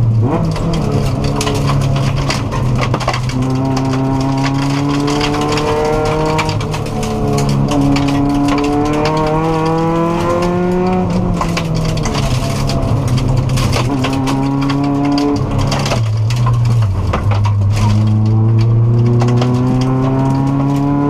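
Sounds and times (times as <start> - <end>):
gravel clattering against underside: 0.0 - 21.0
rally car engine revving: 0.0 - 21.0.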